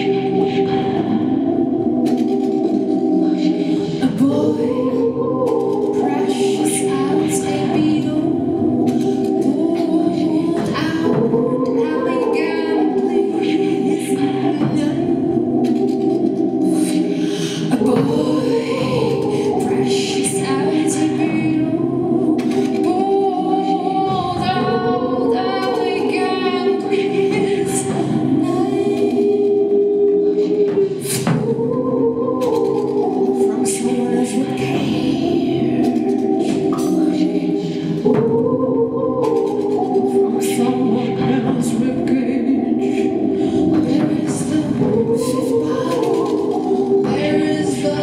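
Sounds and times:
woman singing into a microphone: 0.0 - 1.8, 2.5 - 48.0
voices singing in harmony: 0.0 - 48.0.

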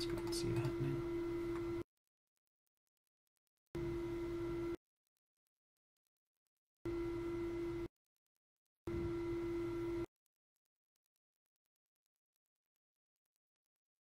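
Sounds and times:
electrical hum: 0.0 - 1.8, 3.8 - 4.8.

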